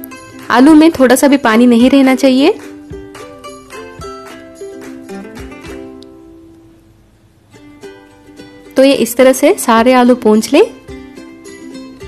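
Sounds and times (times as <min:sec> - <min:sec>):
plucked strings music: 0:02.5 - 0:06.8, 0:07.4 - 0:08.8, 0:10.7 - 0:12.0.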